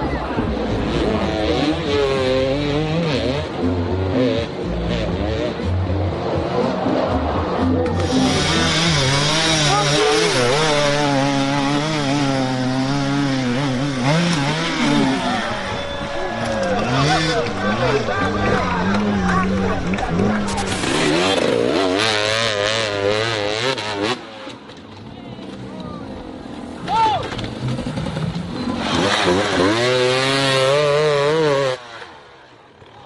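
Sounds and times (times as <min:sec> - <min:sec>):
dirt bike engines revving: 0:00.0 - 0:33.0
spectators shouting: 0:06.3 - 0:11.9, 0:14.0 - 0:21.3, 0:26.8 - 0:27.4.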